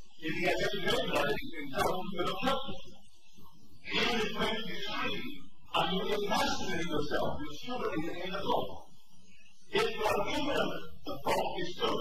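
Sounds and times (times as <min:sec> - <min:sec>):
man speaking: 0:00.1 - 0:03.0, 0:03.8 - 0:12.0.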